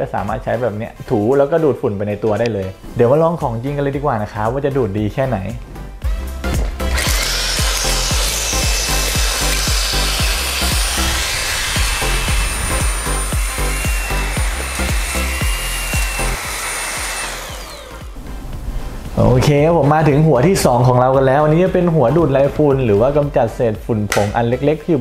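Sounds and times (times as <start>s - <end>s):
background music with steady beat: 0.0s - 25.0s
handheld vacuum whining: 6.6s - 18.7s.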